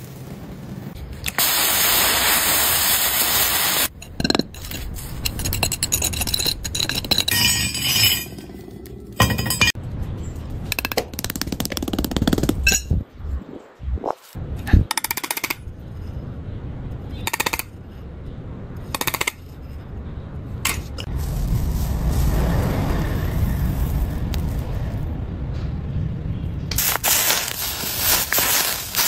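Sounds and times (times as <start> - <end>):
molten metal hissing: 0.0 - 9.8, 21.0 - 25.2, 26.7 - 29.0
metal clinking on concrete: 4.0 - 8.6, 9.2 - 9.8.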